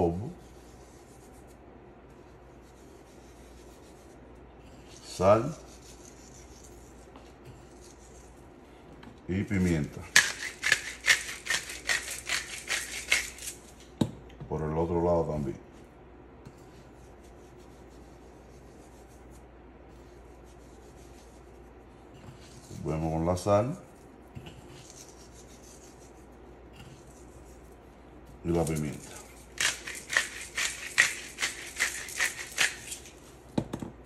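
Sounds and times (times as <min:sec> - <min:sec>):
low steady hum: 0:00.0 - 0:34.0
pepper grinder bursts: 0:10.1 - 0:13.6, 0:29.1 - 0:33.2
salt grains falling on meat: 0:28.6 - 0:33.1.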